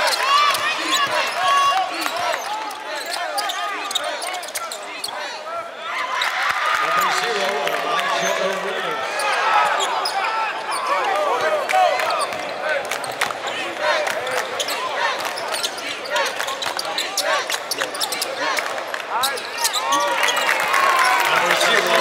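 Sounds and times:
sneaker squeaks: 0:00.0 - 0:05.4, 0:08.1 - 0:11.0, 0:14.2 - 0:18.6, 0:19.2 - 0:21.3
scattered voices: 0:06.8 - 0:20.0.

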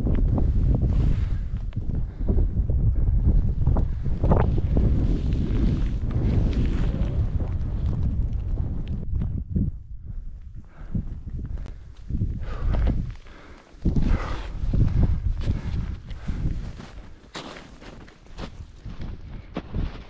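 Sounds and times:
wind buffeting microphone: 0:00.0 - 0:20.0.

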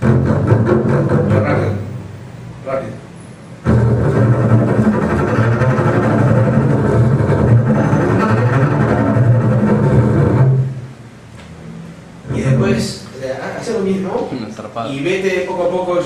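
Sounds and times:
double bass plucked pizzicato: 0:00.0 - 0:02.3, 0:03.5 - 0:12.8.

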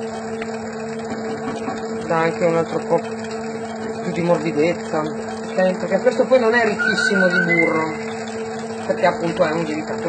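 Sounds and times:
dough-kneading machine humming: 0:00.0 - 0:10.0.

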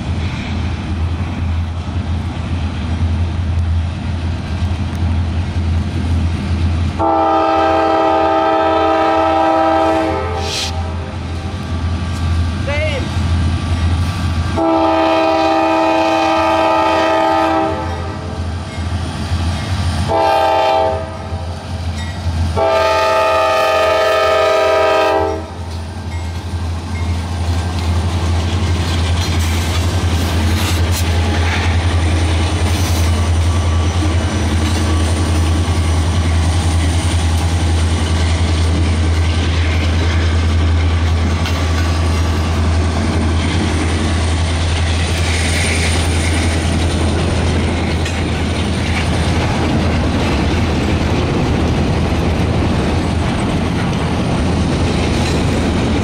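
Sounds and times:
locomotive rumbling: 0:00.0 - 0:56.0
locomotive air horn blasts: 0:07.0 - 0:11.1, 0:14.6 - 0:18.3, 0:20.1 - 0:21.4, 0:22.6 - 0:25.6.

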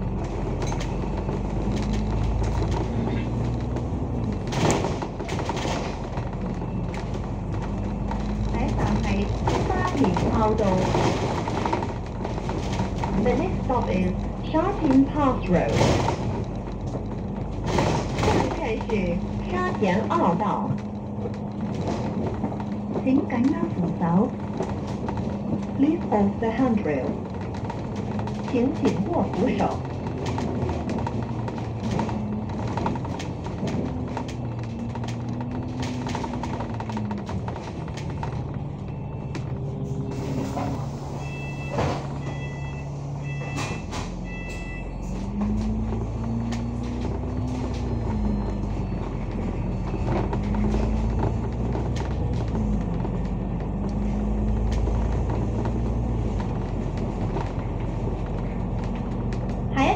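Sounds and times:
bus engine and driveline whine: 0:00.0 - 0:59.9.

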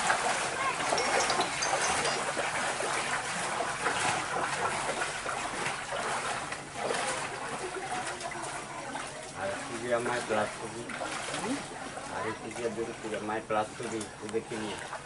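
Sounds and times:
footsteps splashing through water: 0:00.0 - 0:15.0.

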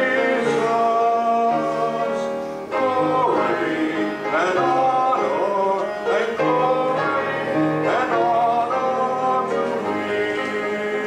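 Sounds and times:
congregation singing a hymn: 0:00.0 - 0:11.0
piano: 0:00.0 - 0:11.0.

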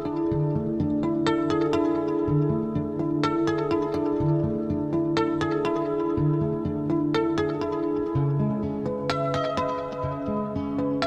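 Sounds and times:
plucked ringing notes: 0:00.0 - 0:11.0.

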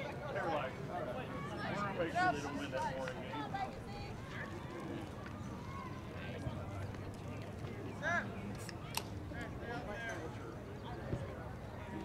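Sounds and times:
distant shouts and chatter: 0:00.0 - 0:12.0.

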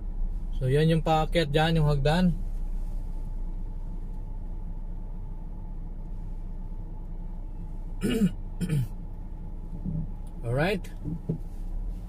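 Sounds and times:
car road and engine rumble: 0:00.0 - 0:12.0
person coughing: 0:08.0 - 0:08.9.

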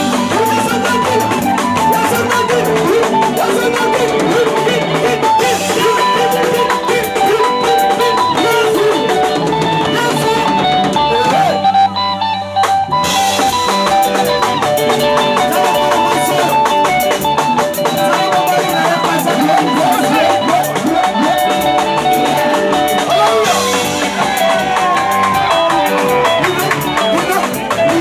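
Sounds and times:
bass guitar: 0:00.0 - 0:28.0
drum kit: 0:00.0 - 0:28.0
lead guitar: 0:00.0 - 0:28.0.

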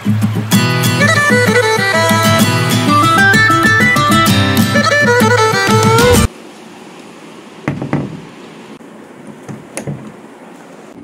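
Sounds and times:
steady low hiss: 0:00.0 - 0:11.0
dull knocks: 0:07.7 - 0:08.2.

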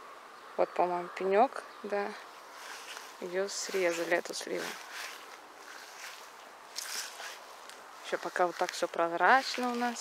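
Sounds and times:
faint steady hiss: 0:00.0 - 0:10.0
soft rustle: 0:02.2 - 0:10.0.

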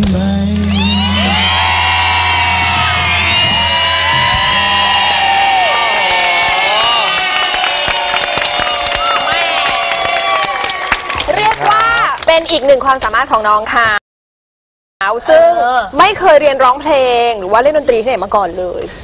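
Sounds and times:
band's low chord ringing: 0:00.0 - 0:05.3
audience screaming and cheering: 0:00.6 - 0:12.2.

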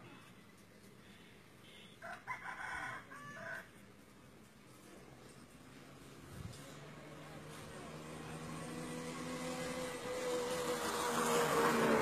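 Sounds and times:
engine humming: 0:04.0 - 0:12.0.

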